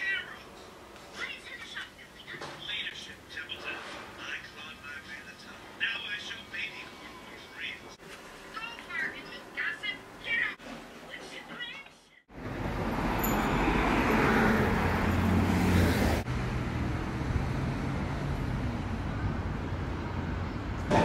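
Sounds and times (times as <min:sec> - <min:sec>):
passing cars and engine hum: 0:12.3 - 0:20.9.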